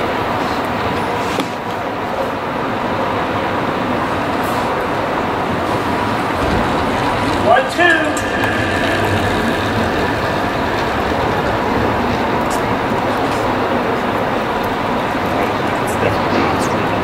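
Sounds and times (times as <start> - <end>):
steady rushing noise: 2.5 - 17.0
low uneven rumble: 3.9 - 16.9.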